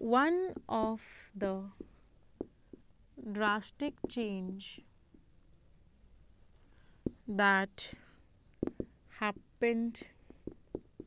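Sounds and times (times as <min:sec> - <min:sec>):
marker writing on whiteboard: 0:00.0 - 0:11.0.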